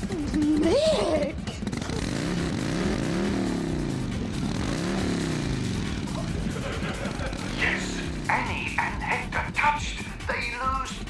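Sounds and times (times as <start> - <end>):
motorcycle engine revving: 0.0 - 11.0.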